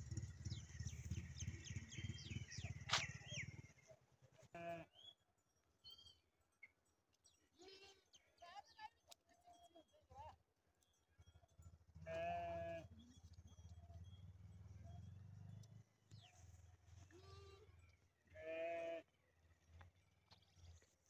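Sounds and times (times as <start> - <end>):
sheep bleating: 4.4 - 4.9, 12.0 - 12.9, 17.1 - 19.1.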